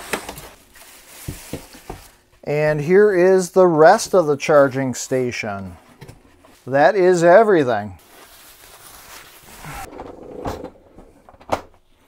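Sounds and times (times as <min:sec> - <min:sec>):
plastic sheet rustling and crinkling: 0:00.0 - 0:02.3, 0:08.0 - 0:09.9.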